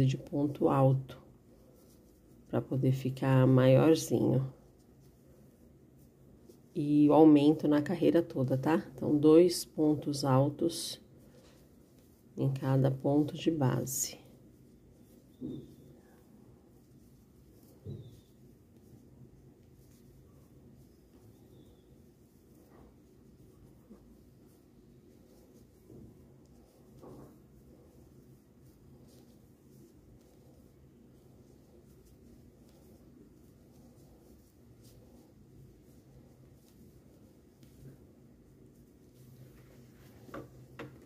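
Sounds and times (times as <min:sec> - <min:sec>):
faint low hum: 0:00.0 - 0:41.0
soft yarn handling sounds: 0:00.0 - 0:41.0.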